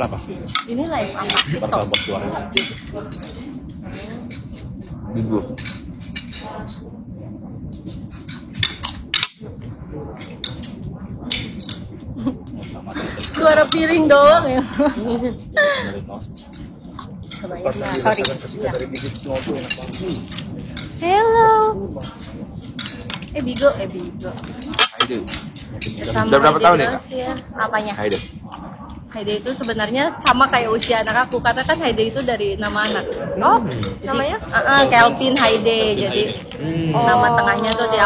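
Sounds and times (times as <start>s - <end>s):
voices talking: 0.0s - 38.0s
cutlery clinking against plates: 7.7s - 9.5s, 16.3s - 21.0s, 22.0s - 27.4s, 30.8s - 34.0s
cutlery clinking on china plates: 24.4s - 26.2s.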